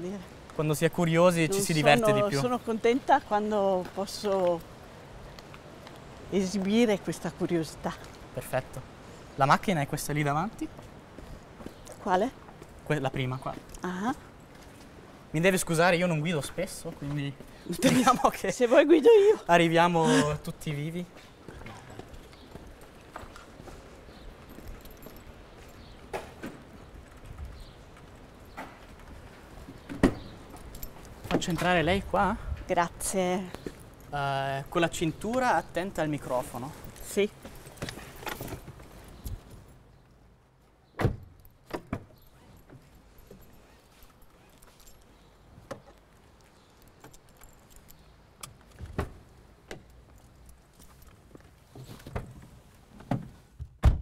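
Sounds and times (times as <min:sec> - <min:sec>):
low street background: 0:00.0 - 0:54.0
footsteps on pavement: 0:03.0 - 0:06.9, 0:10.7 - 0:13.7, 0:21.0 - 0:32.1, 0:33.3 - 0:34.2, 0:48.5 - 0:52.1
car keys jangling: 0:24.1 - 0:26.0, 0:30.4 - 0:31.6, 0:41.2 - 0:45.4, 0:46.0 - 0:48.8.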